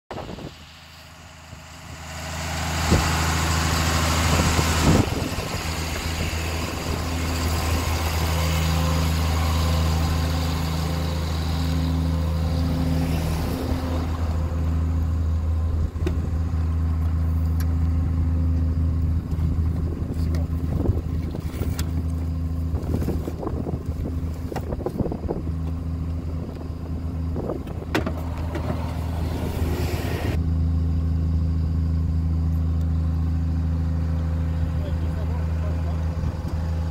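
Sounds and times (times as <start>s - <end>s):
rush of noise: 0.1s - 16.6s, 26.8s - 30.4s
vehicle engine idling: 0.1s - 36.9s.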